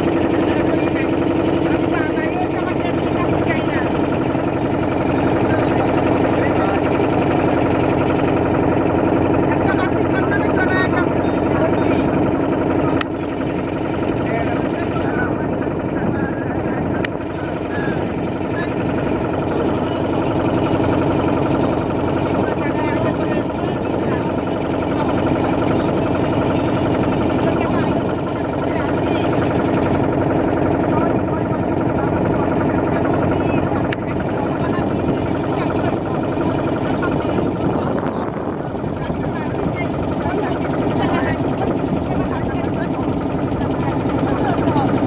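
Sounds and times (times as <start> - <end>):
faint voices: 0.0 - 45.0
motorboat engine drone: 0.0 - 45.0.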